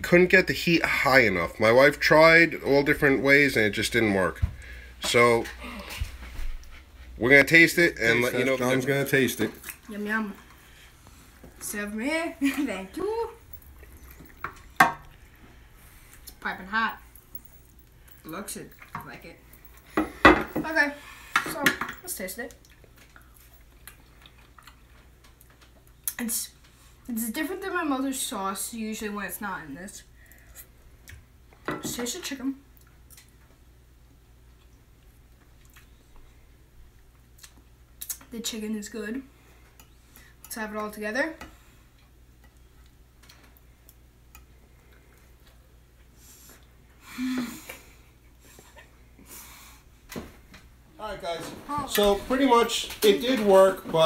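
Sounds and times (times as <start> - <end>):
low room hum: 0.0 - 54.0
child chewing pasta: 13.4 - 16.4, 22.5 - 27.1, 32.7 - 38.2, 41.7 - 49.9.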